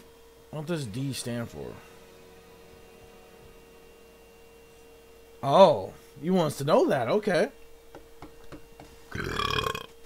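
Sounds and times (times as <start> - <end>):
burp: 9.1 - 10.0.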